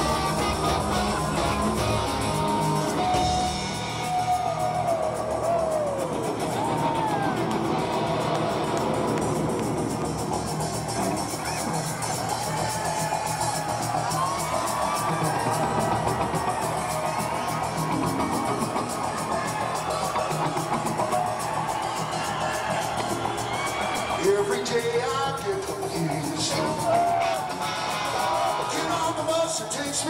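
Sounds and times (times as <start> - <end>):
crowd cheering and whooping: 0.0 - 30.0
live rock band: 0.0 - 30.0.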